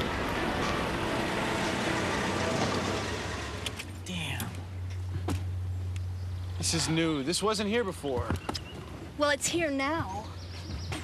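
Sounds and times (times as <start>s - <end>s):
car engine: 0.0s - 4.4s
road noise: 0.0s - 11.0s.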